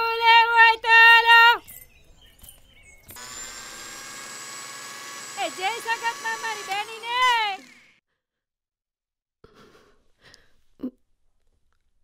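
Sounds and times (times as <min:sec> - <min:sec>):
electric motor whining: 0:03.1 - 0:08.0.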